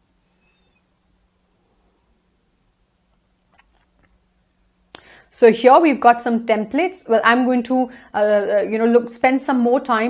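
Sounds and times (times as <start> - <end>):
faint low hum: 0.0 - 10.0
faint short high chirp: 0.2 - 0.9.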